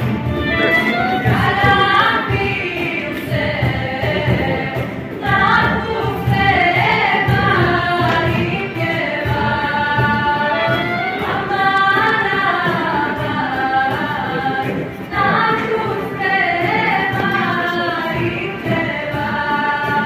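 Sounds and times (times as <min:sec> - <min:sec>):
women singing in a choir: 0:00.9 - 0:20.0.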